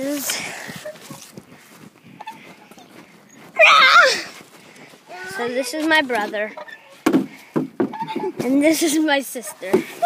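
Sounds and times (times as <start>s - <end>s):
short loud wavering cry: 3.6s - 4.3s.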